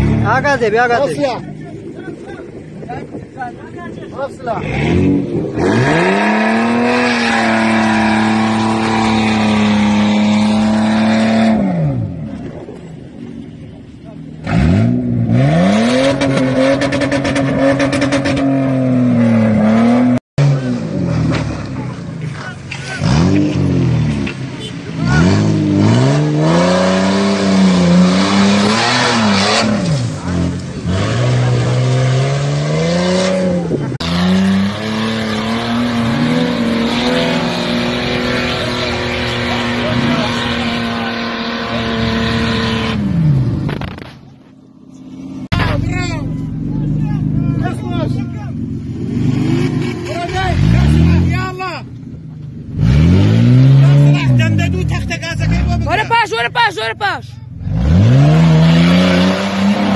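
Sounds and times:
suv engines revving: 0.0s - 59.9s.

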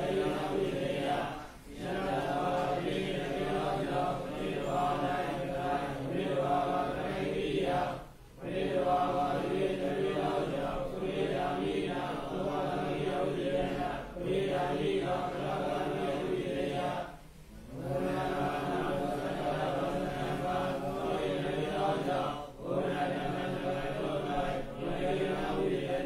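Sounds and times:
monotone chanting: 0.0s - 26.0s.

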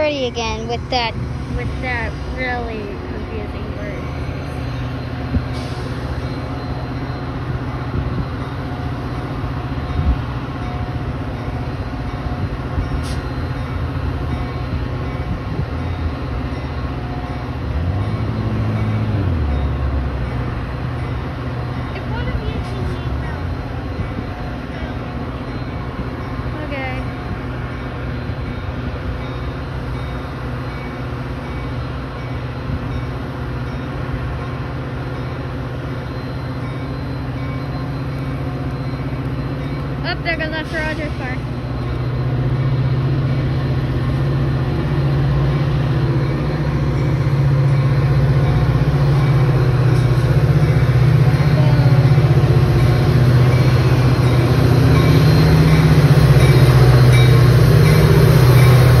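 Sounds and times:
diesel locomotive engine hum: 0.0s - 59.0s.

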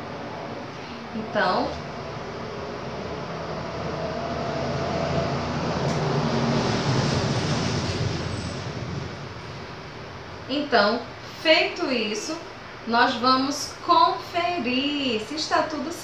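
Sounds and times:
vehicle passing: 0.0s - 10.2s.

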